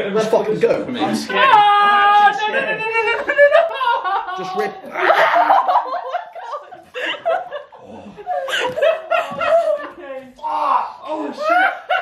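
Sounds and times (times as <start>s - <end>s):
men laughing: 1.1s - 10.4s, 11.0s - 12.0s.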